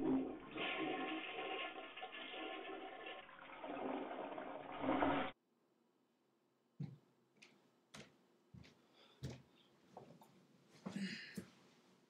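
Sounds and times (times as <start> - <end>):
water rushing and gurgling: 3.6 - 5.4.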